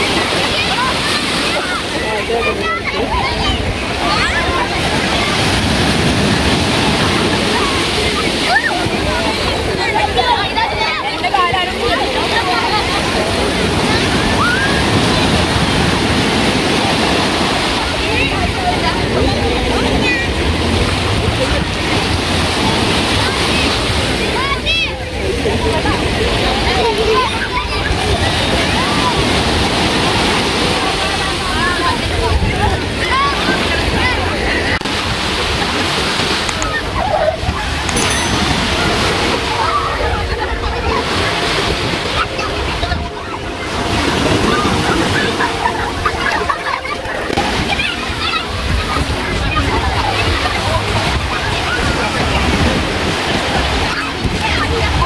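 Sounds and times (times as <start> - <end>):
sea surf washing in: 0.0 - 24.5, 27.6 - 55.0
voices calling out: 0.0 - 55.0.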